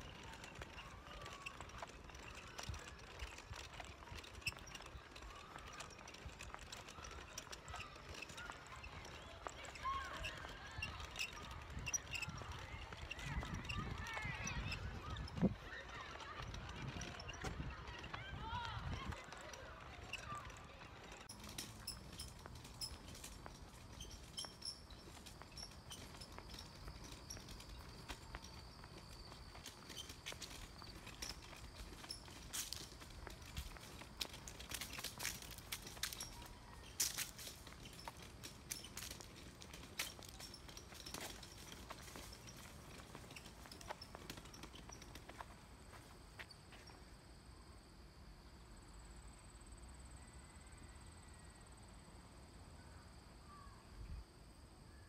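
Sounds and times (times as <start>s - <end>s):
shopping trolley rolling: 0.0s - 46.1s
footsteps on paved path: 0.0s - 47.2s.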